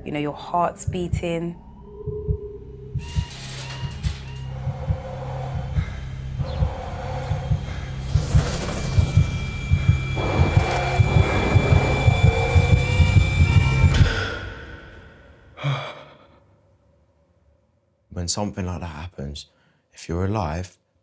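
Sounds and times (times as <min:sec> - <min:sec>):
low heartbeat-like thumps: 0:00.7 - 0:14.3
drone: 0:01.8 - 0:15.4.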